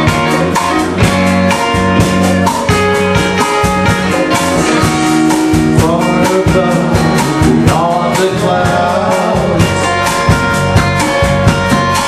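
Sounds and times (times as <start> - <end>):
live band playing slow jam: 0.0 - 12.0
sliding lead melody: 0.0 - 12.0
steady drum beats: 0.0 - 12.0.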